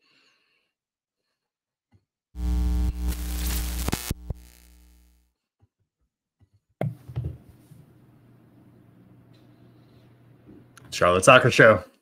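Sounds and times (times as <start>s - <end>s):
sharp glitchy clicks: 2.4s - 5.2s
static-like hiss: 2.4s - 5.2s.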